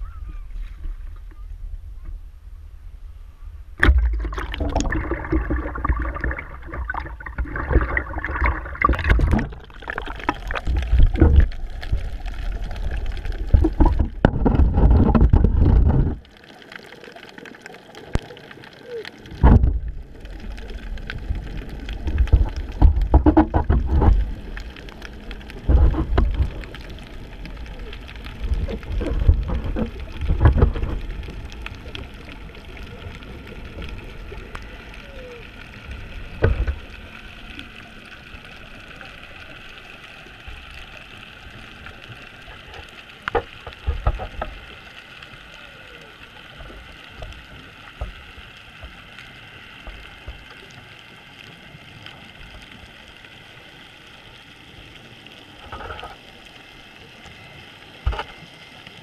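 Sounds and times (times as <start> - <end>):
muffled underwater hiss: 0.0 - 59.0
water rumbling and bubbling: 0.0 - 59.0.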